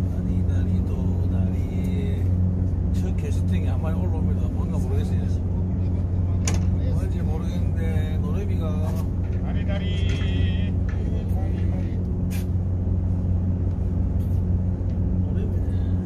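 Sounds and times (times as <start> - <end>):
boat engine idling: 0.0 - 16.0.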